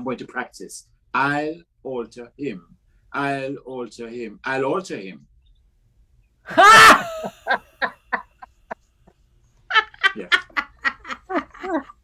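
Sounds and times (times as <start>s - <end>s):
person laughing loudly: 6.5s - 8.5s, 9.7s - 12.0s.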